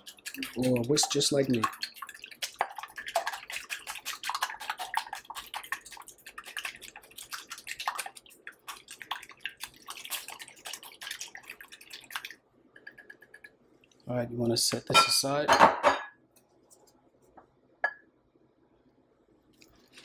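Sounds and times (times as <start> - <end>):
whisk beating eggs in bowl: 0.0 - 13.5.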